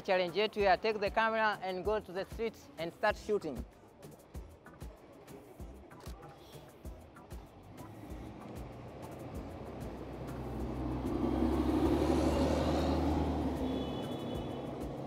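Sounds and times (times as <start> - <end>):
bus driving past: 7.4 - 15.0.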